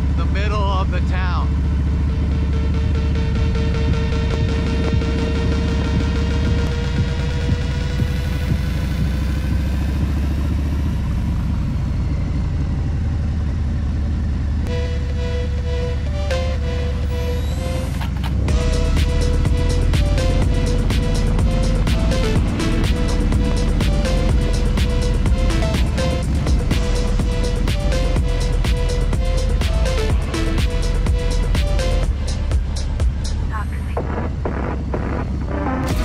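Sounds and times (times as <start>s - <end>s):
motorcycle engine rumble: 0.0s - 36.0s
background music with beat: 2.6s - 11.5s, 14.7s - 36.0s.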